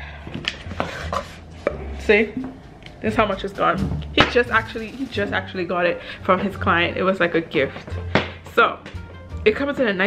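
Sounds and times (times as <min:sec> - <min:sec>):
low handling rumble: 0:01.4 - 0:07.8.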